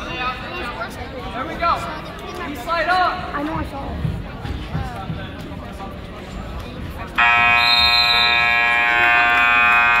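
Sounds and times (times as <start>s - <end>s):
scoreboard buzzer blast: 7.2s - 10.0s.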